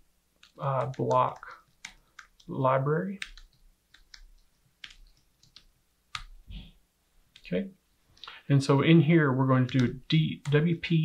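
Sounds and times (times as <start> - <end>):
computer keyboard typing: 0.4 - 6.4, 9.6 - 10.7.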